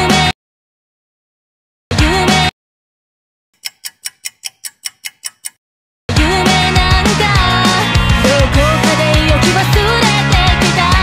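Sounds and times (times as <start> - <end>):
clock ticking: 3.6 - 5.6.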